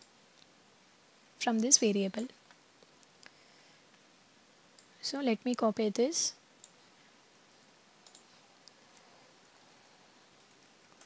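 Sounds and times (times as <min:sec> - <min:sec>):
computer mouse clicks: 0:06.6 - 0:06.8, 0:07.6 - 0:09.1, 0:10.3 - 0:11.0.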